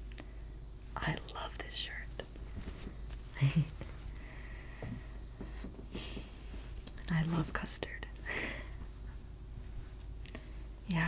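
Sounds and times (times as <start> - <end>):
person whispering: 1.0 - 2.3, 7.0 - 8.2.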